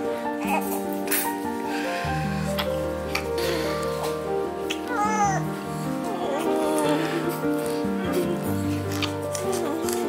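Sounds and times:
background music: 0.0 - 10.0
newborn baby crying: 0.4 - 1.4, 2.2 - 10.0.

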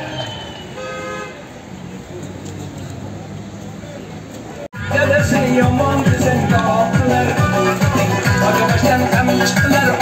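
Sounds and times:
horn toot: 0.0 - 1.5
faint street noise: 0.0 - 10.0
music: 4.8 - 10.0.

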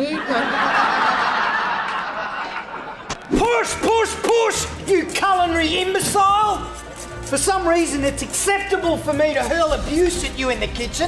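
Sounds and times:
audience laughing: 0.0 - 3.4.

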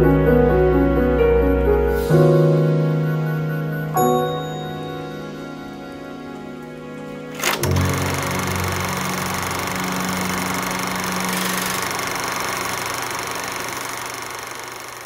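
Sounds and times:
soft background tune: 0.0 - 12.1
film projector whirring: 7.3 - 15.0
sharp click: 7.4 - 8.6.

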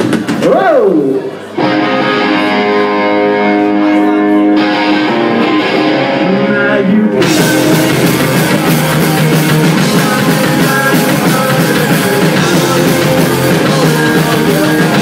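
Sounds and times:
drums: 0.0 - 15.0
punk rock band playing: 0.0 - 15.0
electric guitar chords: 1.1 - 15.0.

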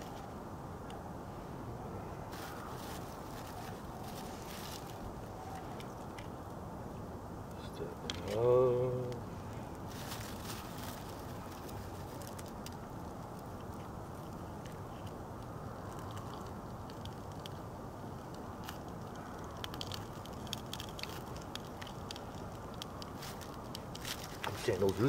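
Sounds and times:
low background noise: 0.0 - 25.0
small fire crackling and popping: 2.0 - 25.0.

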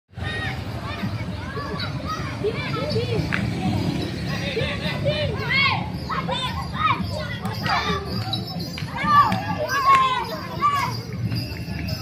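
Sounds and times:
children shouting while playing: 0.2 - 11.2.

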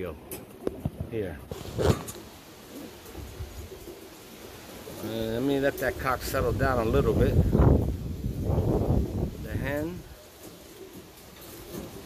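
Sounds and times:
pigeon cooing: 1.5 - 12.0.

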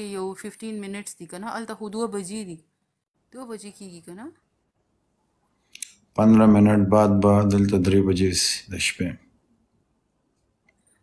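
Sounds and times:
person talking: 5.8 - 9.2.

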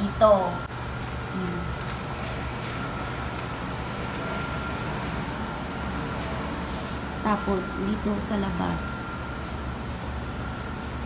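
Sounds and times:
laundry machines droning: 0.0 - 11.0.

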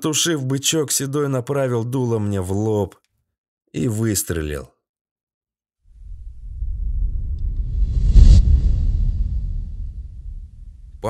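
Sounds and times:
low rumbling swell: 6.0 - 11.0.

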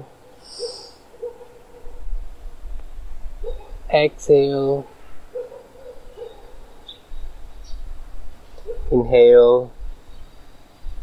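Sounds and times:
person breathing in: 0.4 - 1.0.

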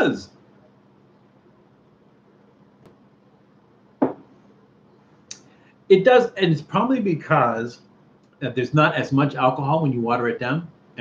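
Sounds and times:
glass set down on table: 4.0 - 4.3.

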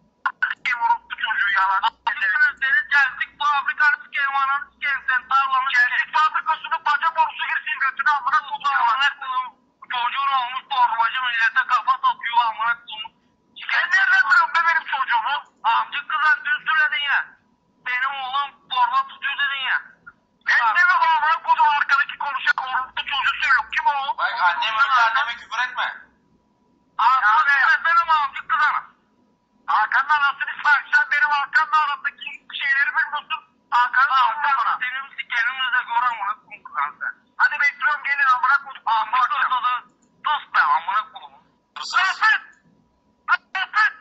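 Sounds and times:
person speaking over telephone: 0.3 - 26.1, 27.0 - 29.0, 29.6 - 42.6, 43.3 - 44.0.

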